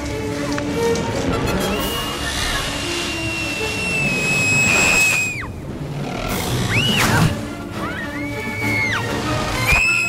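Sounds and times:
high sliding whistle-like note: 2.0 - 5.5.

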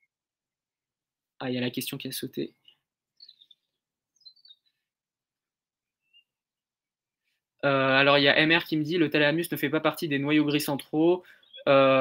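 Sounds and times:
faint high chirps: 2.6 - 4.9.

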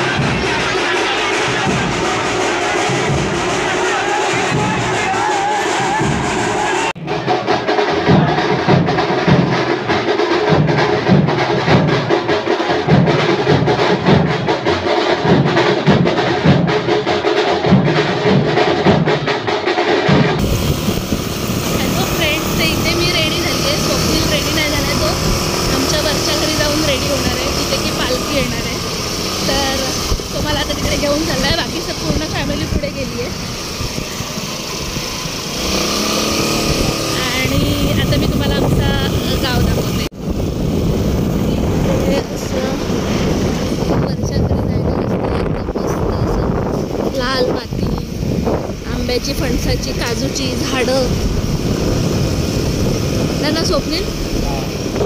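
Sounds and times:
crowd voices: 0.0 - 16.8, 20.1 - 40.2, 41.1 - 48.2
music: 0.0 - 20.5
dense drum beat: 0.0 - 55.0.

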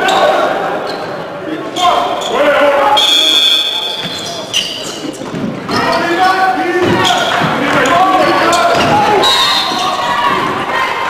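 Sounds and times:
voices of players and spectators: 0.0 - 11.0
high squeal: 1.8 - 6.3
ball bouncing on hardwood court: 6.8 - 9.1.

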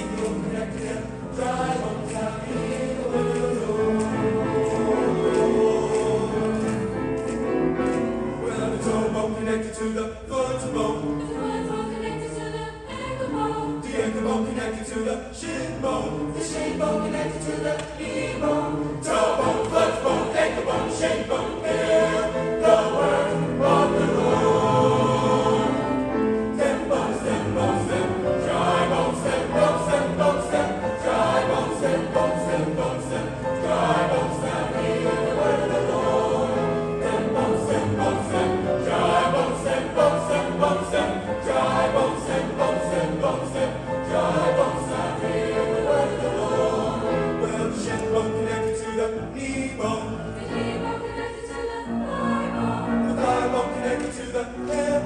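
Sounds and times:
choir singing in harmony: 0.0 - 55.0.

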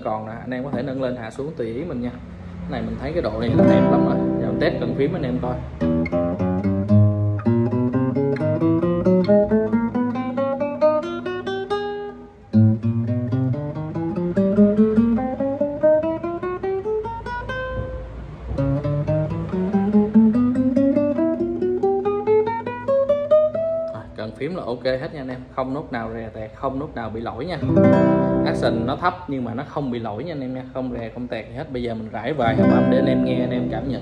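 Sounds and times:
plucked classical guitar notes: 0.1 - 1.8, 3.2 - 25.6, 27.4 - 29.6, 32.2 - 34.0.

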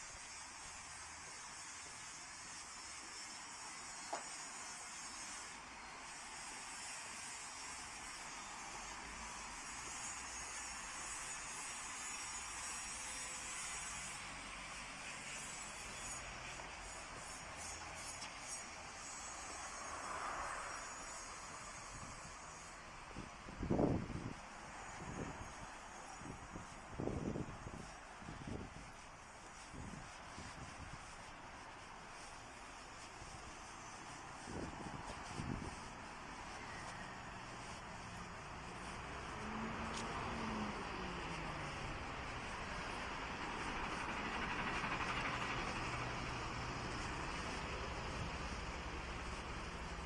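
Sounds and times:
faint high-pitched hiss: 0.0 - 50.0
wind buffeting microphone: 23.1 - 31.2, 34.3 - 36.0.

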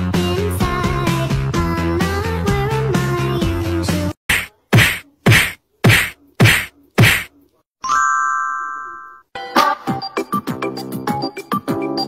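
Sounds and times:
sharp percussive hits with low thud: 4.3 - 7.3.

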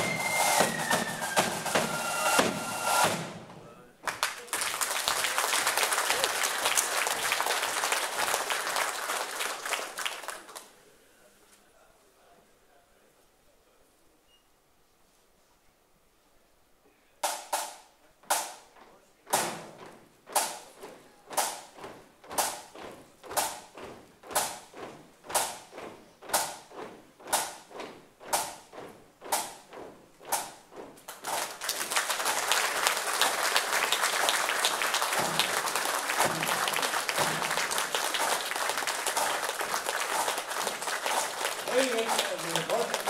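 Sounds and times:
drum marching beat: 0.0 - 3.7, 17.2 - 43.0
audience applause: 4.0 - 10.8, 31.1 - 43.0.

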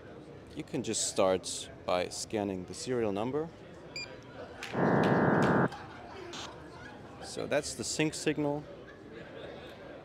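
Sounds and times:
loud dense chord of tones: 4.8 - 5.7.

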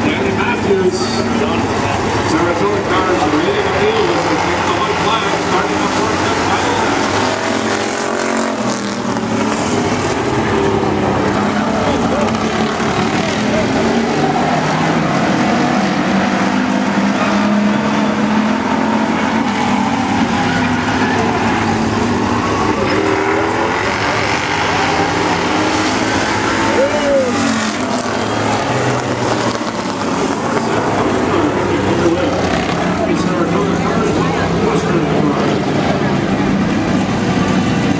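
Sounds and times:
stock car engines revving: 0.0 - 37.9.

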